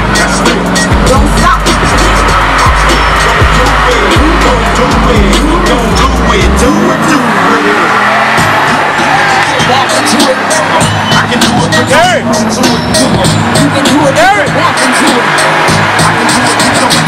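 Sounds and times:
loud music with deep bass: 0.0 - 17.0
tires squealing: 0.0 - 17.0.

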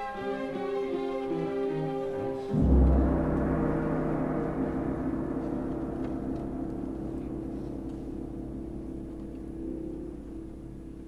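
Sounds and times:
orchestra holding low notes: 0.0 - 11.0
tam-tam resonance: 2.5 - 11.0.

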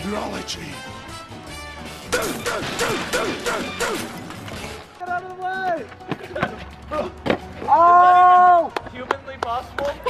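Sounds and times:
person yelling: 7.7 - 8.8.

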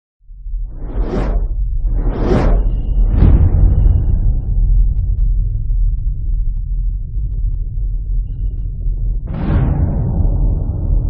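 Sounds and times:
deep low rumble: 0.2 - 11.0
whoosh sound effect: 0.8 - 4.4.

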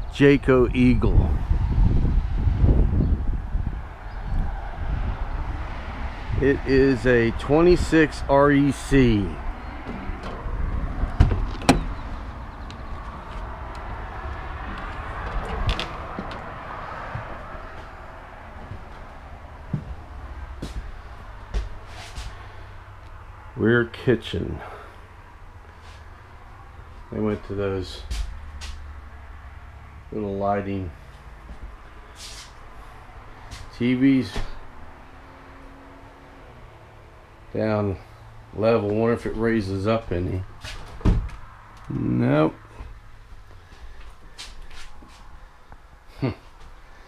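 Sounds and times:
steady low rumble: 6.3 - 30.2
footsteps knocking and clicking: 12.6 - 16.5, 19.7 - 20.0, 21.5 - 21.8.

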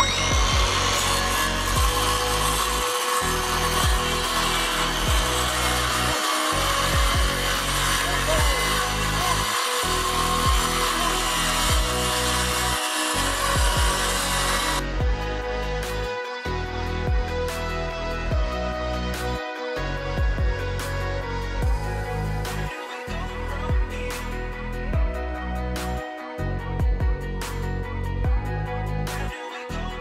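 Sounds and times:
circular saw cutting plywood: 0.0 - 16.1, 21.7 - 24.4
background music: 0.0 - 30.0.

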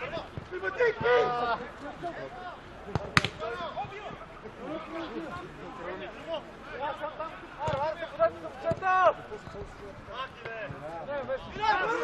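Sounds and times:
players calling out: 0.0 - 12.0
football being kicked: 2.9 - 4.2, 7.6 - 7.9.

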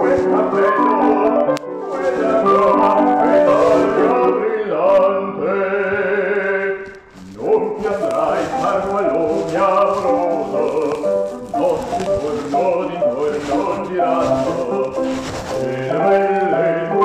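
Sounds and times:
musical accompaniment: 0.0 - 5.9, 6.8 - 17.0
man singing classical: 0.0 - 17.0.

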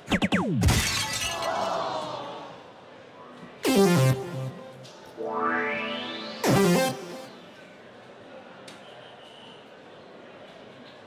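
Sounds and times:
dartboard machine sound effect: 3.6 - 7.5.

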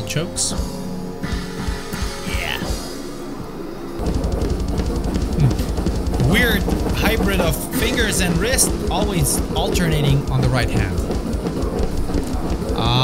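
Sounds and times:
double-bass kick drums: 4.0 - 13.0
metal band playing: 4.0 - 13.0.

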